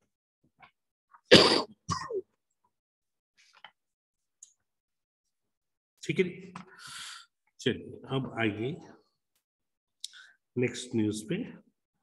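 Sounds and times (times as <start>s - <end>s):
person coughing: 1.3s - 2.2s.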